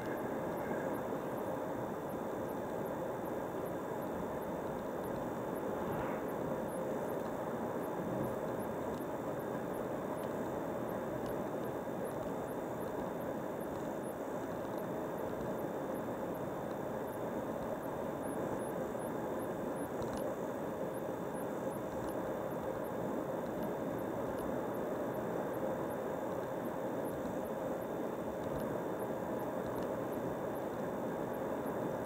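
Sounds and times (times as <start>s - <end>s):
faint steady hum: 0.0s - 32.0s.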